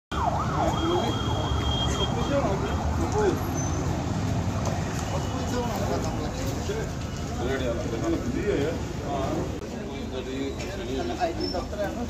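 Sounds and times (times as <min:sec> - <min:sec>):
road traffic rumble: 0:00.1 - 0:12.0.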